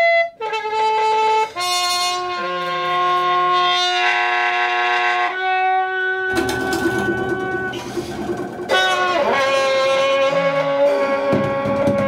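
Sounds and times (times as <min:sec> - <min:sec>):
trumpet holding long notes: 0:00.0 - 0:12.0
double bass: 0:06.2 - 0:12.0
drums and cymbals: 0:06.3 - 0:12.0.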